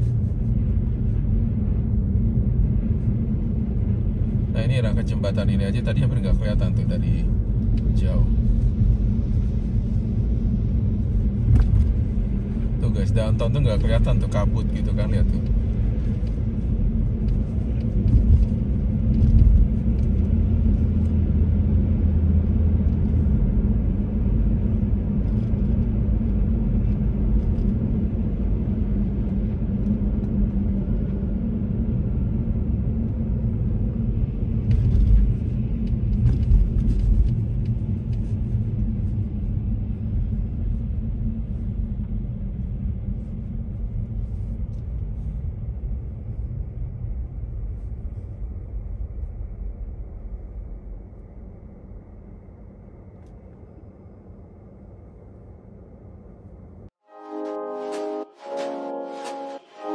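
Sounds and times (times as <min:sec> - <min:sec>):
car rumble from inside cabin: 0:00.0 - 0:49.0.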